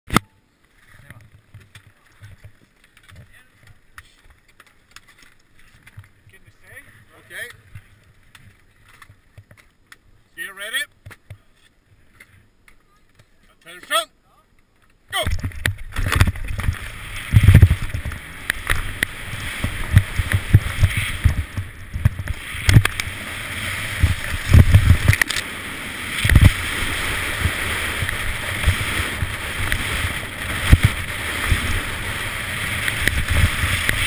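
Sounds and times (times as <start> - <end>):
camera handling bumps and clicks: 15.3 - 16.8
skis scraping over snow: 15.9 - 34.0.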